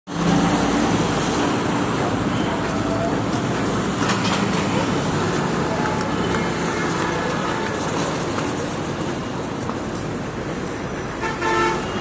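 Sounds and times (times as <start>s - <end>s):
road traffic: 0.1s - 12.0s.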